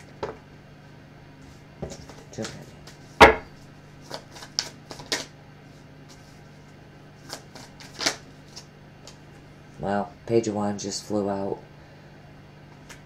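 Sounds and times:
cards being shuffled: 0:04.0 - 0:05.3, 0:07.2 - 0:09.2.

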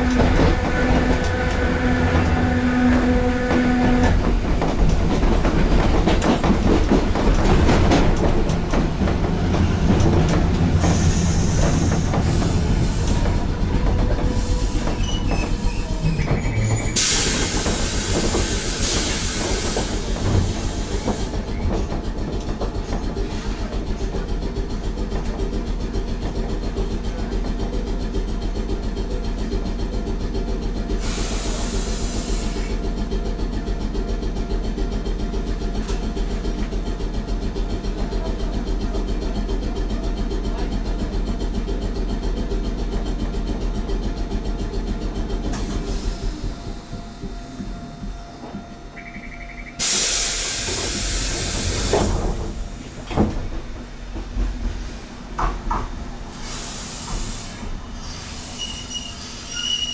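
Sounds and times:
tram mechanical running hum: 0:00.0 - 0:59.9
compressed-air hiss: 0:49.8 - 0:52.2, 0:56.3 - 0:58.8.

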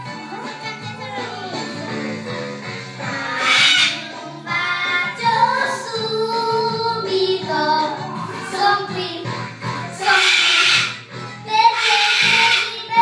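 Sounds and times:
children singing into microphones: 0:03.1 - 0:09.2, 0:10.0 - 0:13.0.

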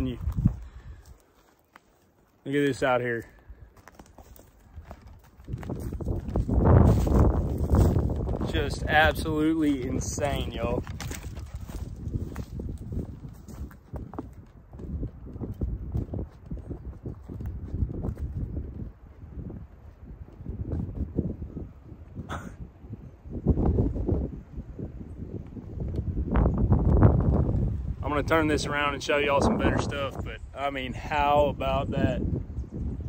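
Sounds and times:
wind buffeting microphone: 0:00.0 - 0:01.2, 0:03.3 - 0:33.0.

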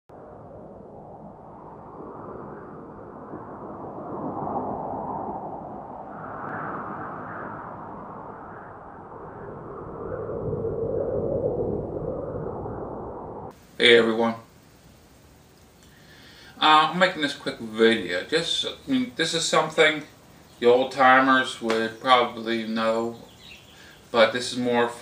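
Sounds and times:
whooshing rush with low rumble: 0:00.1 - 0:13.6.

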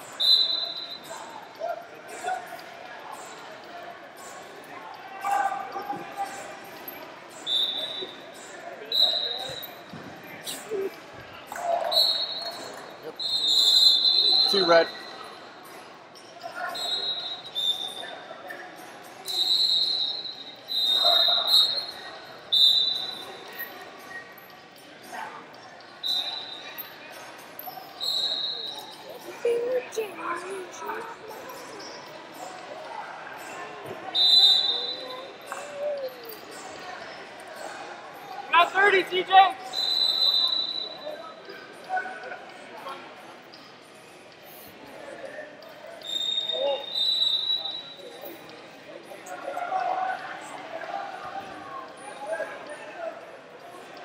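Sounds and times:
scattered voices: 0:00.0 - 0:54.0.

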